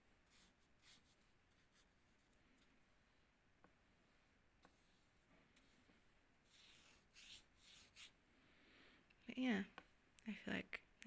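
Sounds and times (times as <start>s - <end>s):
paintbrush strokes on paper: 0.0s - 8.3s.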